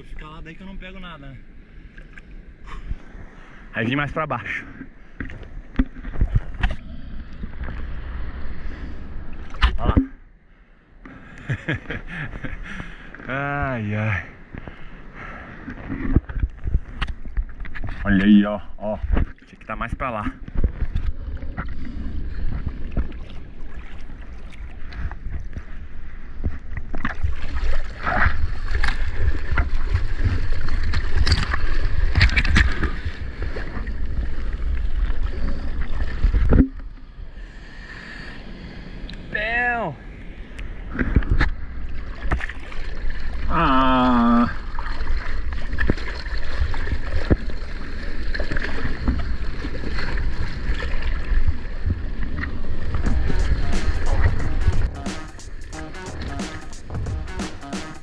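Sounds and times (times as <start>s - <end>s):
low rumble of water: 0.0s - 37.8s, 40.0s - 54.9s
sea water sloshing and splashing: 4.4s - 10.2s, 14.4s - 37.2s, 40.6s - 54.3s.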